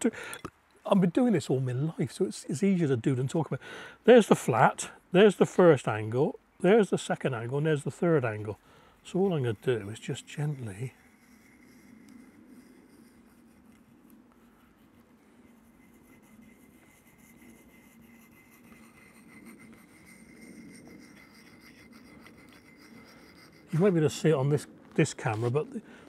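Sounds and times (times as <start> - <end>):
blade scraping on sharpening stone: 9.3 - 13.3, 15.6 - 24.2.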